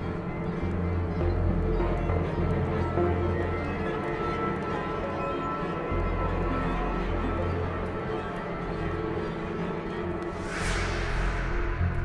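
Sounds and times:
dark ominous score with low drone: 0.0 - 12.0.

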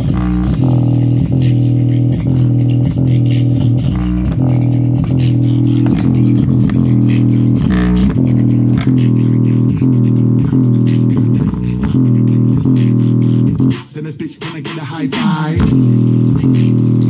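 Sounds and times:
bass-heavy music from speaker: 0.0 - 17.0.

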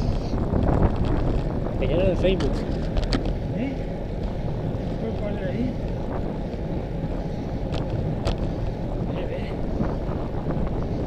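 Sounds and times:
road noise: 0.0 - 11.0
wind rumbling on microphone: 0.0 - 11.0.

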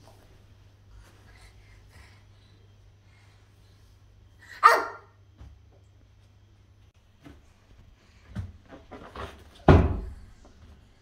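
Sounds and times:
breathing: 0.8 - 4.1
toddler yelping: 4.5 - 5.1.

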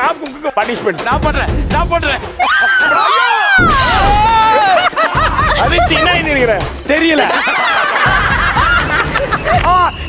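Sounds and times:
background music: 0.0 - 10.0
group of people laughing: 2.4 - 10.0.

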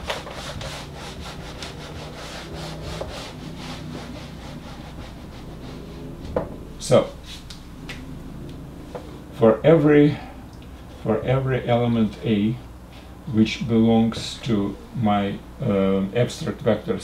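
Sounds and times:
eraser rubbing on whiteboard: 0.0 - 6.4.

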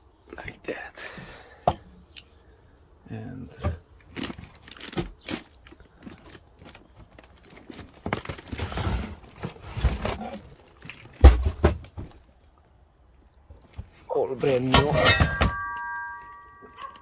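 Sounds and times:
packaging rustling and knocking: 4.1 - 12.3.

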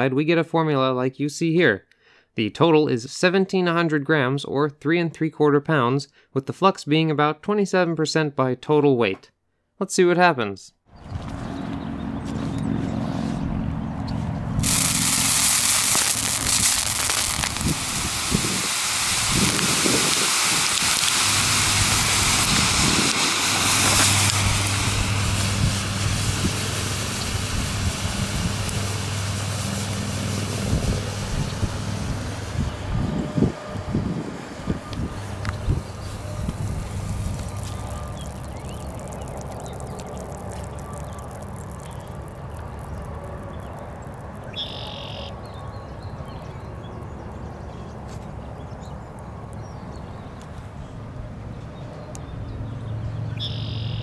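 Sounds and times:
thermite hissing rush: 14.5 - 45.2.

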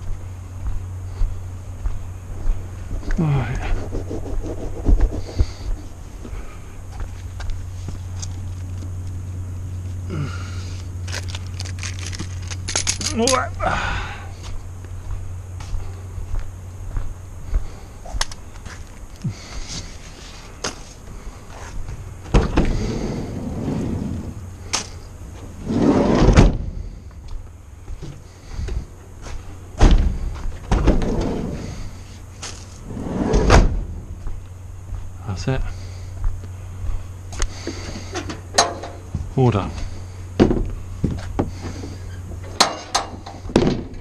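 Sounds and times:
steady low hum: 0.0 - 44.0
rustling and handling noise: 10.7 - 13.5, 31.6 - 32.9.

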